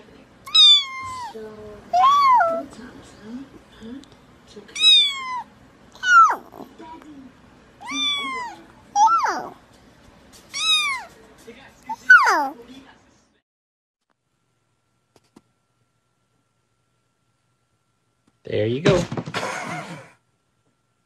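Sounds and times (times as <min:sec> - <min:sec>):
cat meowing: 0:00.5 - 0:01.4, 0:02.0 - 0:02.7, 0:04.8 - 0:06.6, 0:07.8 - 0:09.5, 0:10.5 - 0:11.2
small child babbling: 0:07.8 - 0:09.6.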